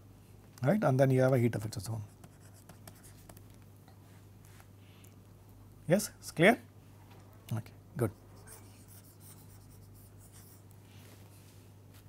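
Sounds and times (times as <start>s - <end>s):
steady low hum: 0.0s - 12.0s
stylus scratching on tablet: 2.0s - 3.4s, 8.0s - 10.7s.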